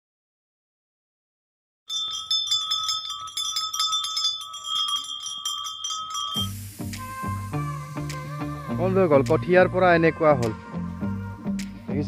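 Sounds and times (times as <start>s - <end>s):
small bells jingling: 1.9s - 7.4s.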